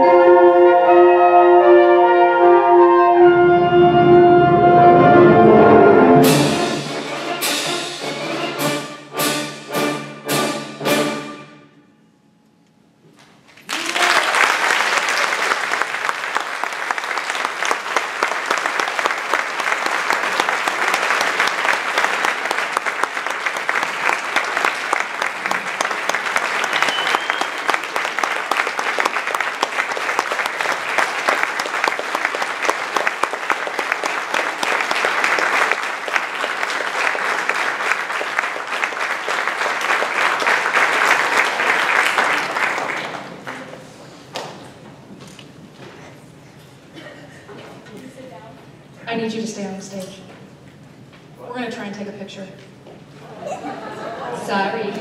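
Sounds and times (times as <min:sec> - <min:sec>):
concert band chord: 0:00.0 - 0:11.7
audience applause: 0:13.5 - 0:44.5.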